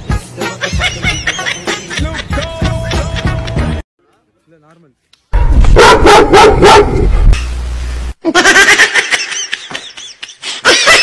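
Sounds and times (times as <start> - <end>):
person laughing: 0.5 - 3.7, 8.2 - 11.0
dog barking: 5.4 - 7.1
heavy low rumble: 6.8 - 8.1.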